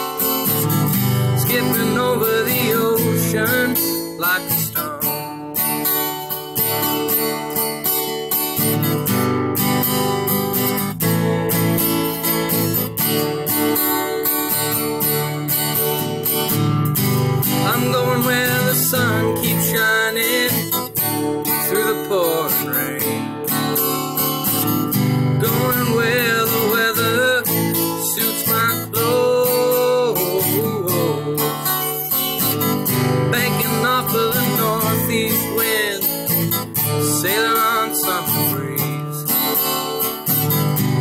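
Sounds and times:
acoustic guitar strumming: 0.0s - 41.0s.

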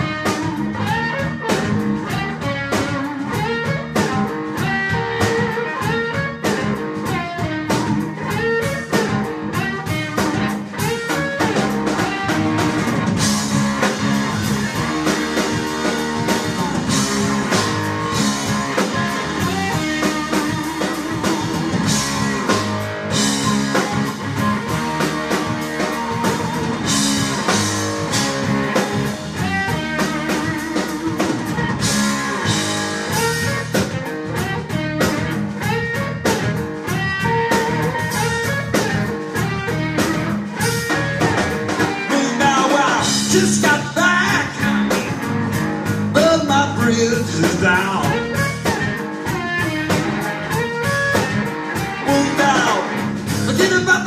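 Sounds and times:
bass guitar: 0.0s - 54.0s
drum kit: 0.0s - 54.0s
electric guitar lead: 0.0s - 54.0s.

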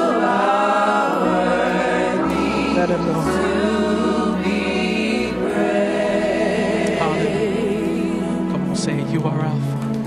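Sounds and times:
choir singing in harmony: 0.0s - 9.2s.

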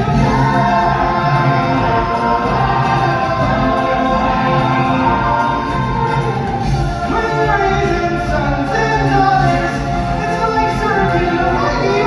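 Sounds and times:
voices singing with musical backing: 0.0s - 12.0s.

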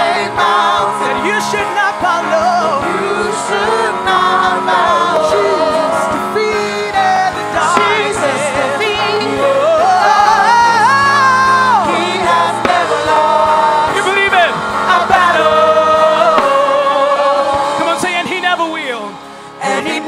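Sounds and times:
man singing into microphone: 0.0s - 18.6s
backing vocals: 0.0s - 20.0s
keyboard chords: 0.0s - 20.0s
steady low beat: 0.4s - 18.8s.

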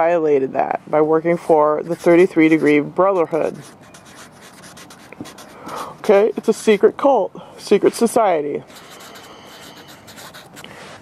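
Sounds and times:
marker scratching on paper: 1.8s - 6.9s, 8.7s - 10.7s.

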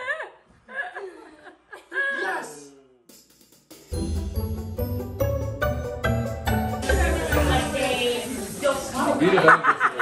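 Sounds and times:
background music: 3.1s - 9.2s.

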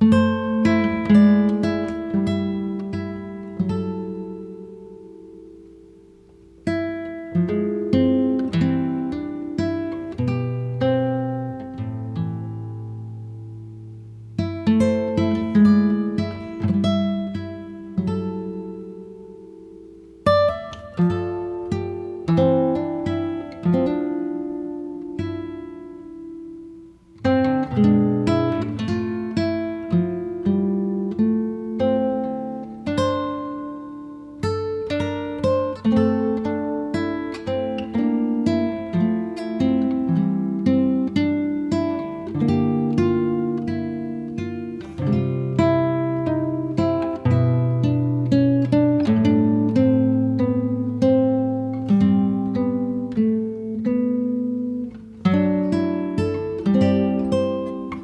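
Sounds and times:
acoustic guitar playing: 0.0s - 58.0s.

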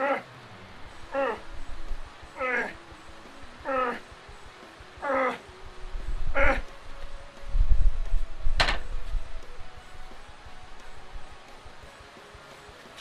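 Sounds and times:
man grunting with effort: 0.0s - 0.3s, 1.1s - 1.5s, 2.4s - 2.8s, 3.6s - 4.2s, 5.0s - 5.5s, 6.3s - 6.7s
low heavy thud: 8.5s - 9.1s.

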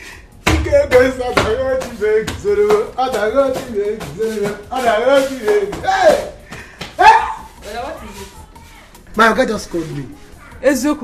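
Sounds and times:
person shouting excitedly: 7.0s - 7.5s.

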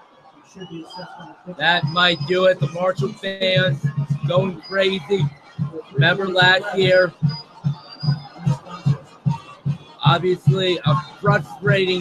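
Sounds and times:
music with steady low beat: 1.4s - 12.0s.

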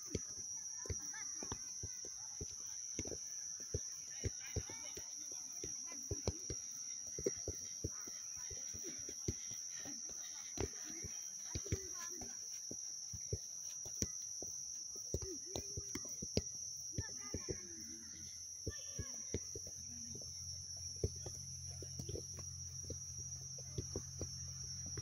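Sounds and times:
football tapped by bare feet: 0.0s - 25.0s
high-pitched insect drone: 0.0s - 25.0s.

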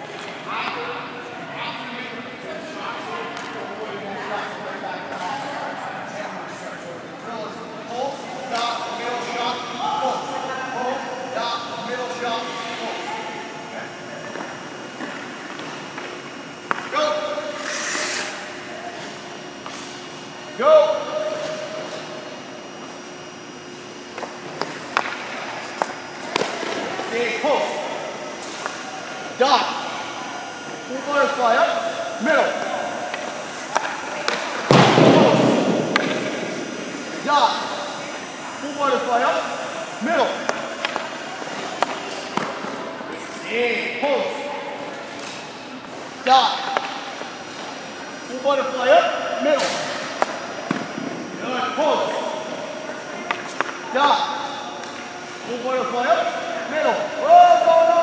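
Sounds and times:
indistinct echoing voices: 0.0s - 58.0s.

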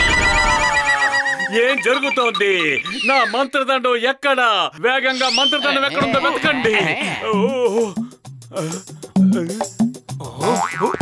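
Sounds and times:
cartoon background music: 0.0s - 3.5s, 5.1s - 11.0s.

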